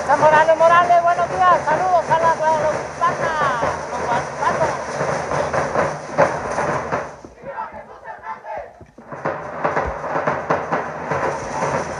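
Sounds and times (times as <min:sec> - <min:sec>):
bass drum beating: 0:00.0 - 0:11.9
snare drum beating: 0:00.0 - 0:11.9.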